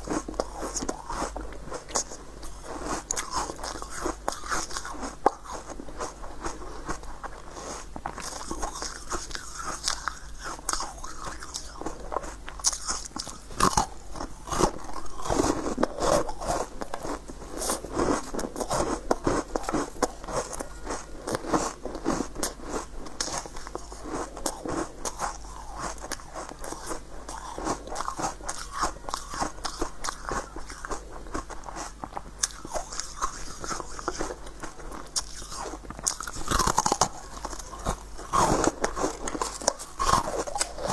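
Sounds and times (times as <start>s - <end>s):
crunchy chewing: 0.0s - 40.9s.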